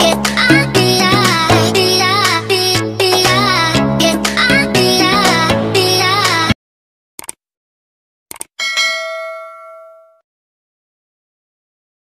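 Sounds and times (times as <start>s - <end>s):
notification bell chime: 8.6s - 10.2s.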